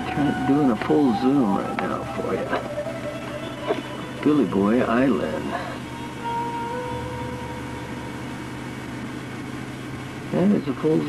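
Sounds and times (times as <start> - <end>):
even hiss: 0.0 - 11.0
low mechanical hum: 0.0 - 11.0.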